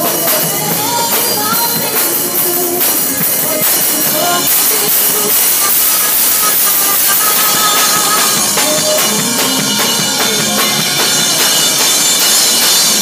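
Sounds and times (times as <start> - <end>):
electric guitar: 0.0 - 13.0
rock drum kit played hard: 0.0 - 13.0.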